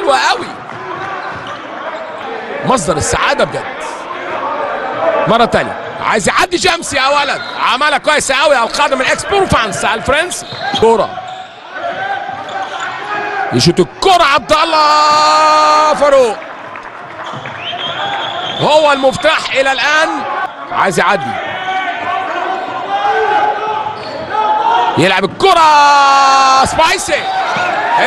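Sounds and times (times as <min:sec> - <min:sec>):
voices in hall: 0:00.0 - 0:28.0
ball bouncing on hall floor: 0:16.7 - 0:18.6.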